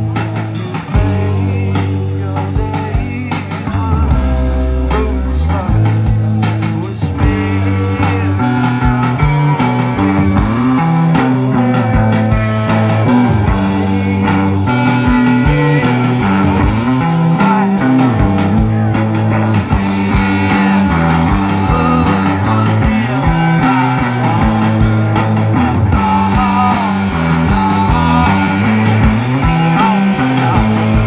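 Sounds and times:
bass guitar: 0.0 - 31.0
drum kit beat: 0.0 - 31.0
electric guitar: 0.0 - 31.0.

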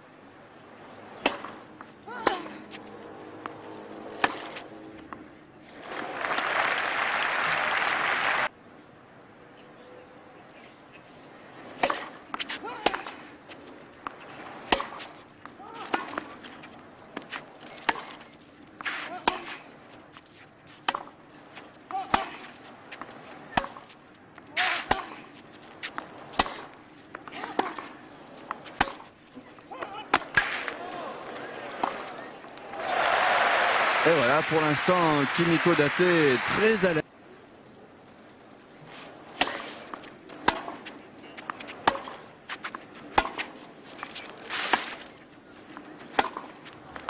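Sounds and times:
tennis ball struck by rackets: 1.1 - 5.2, 11.8 - 13.3, 14.0 - 16.5, 17.1 - 18.2, 18.8 - 19.6, 20.7 - 21.2, 21.8 - 24.0, 24.6 - 29.2, 29.8 - 33.1, 39.3 - 45.1, 45.7 - 47.0
crowd applause: 6.0 - 8.5, 32.6 - 37.0.

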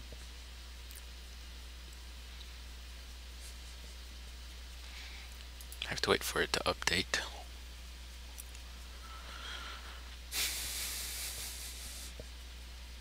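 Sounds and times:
low electrical hum: 0.0 - 13.0
soft hiss: 0.0 - 13.0.

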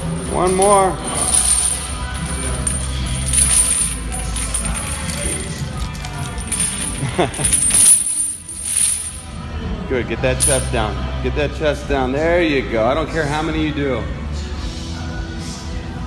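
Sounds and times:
metal chains clinking: 0.0 - 9.4, 10.3 - 10.9
background music: 0.0 - 16.0.

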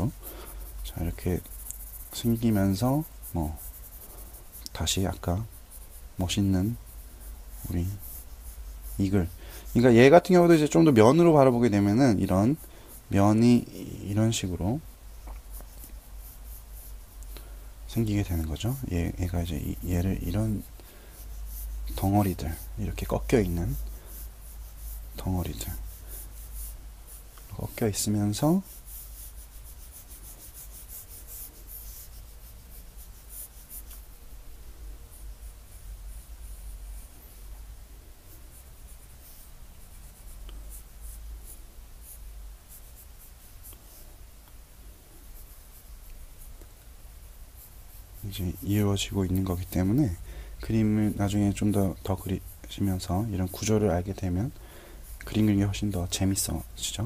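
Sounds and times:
pencil scratching on paper: 0.0 - 34.2, 35.1 - 37.6, 38.3 - 44.1, 45.3 - 46.6, 47.4 - 57.0.

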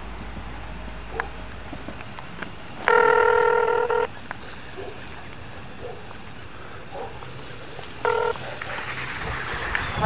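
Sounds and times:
phone beep: 2.8 - 4.1, 8.0 - 8.4.

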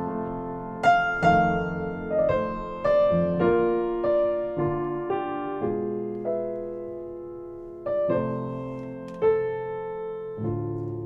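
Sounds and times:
slow solo piano: 0.0 - 11.0.

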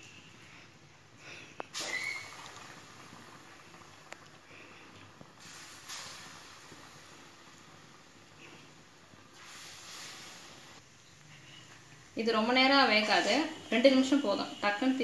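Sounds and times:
food sizzling in hot oil: 1.7 - 10.9.

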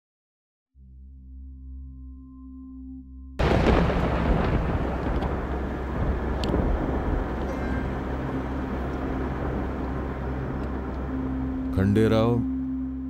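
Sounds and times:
vehicle engine and road noise: 4.8 - 11.8.

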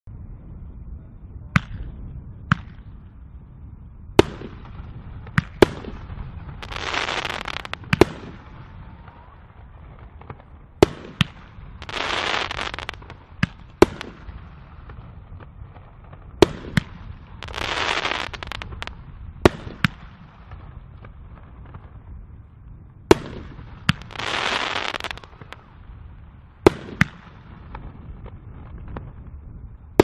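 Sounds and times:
firework bangs: 4.2 - 22.0, 23.1 - 29.4
firework crackling hiss: 5.4 - 9.4, 10.9 - 15.0, 16.5 - 20.4, 23.4 - 25.7.

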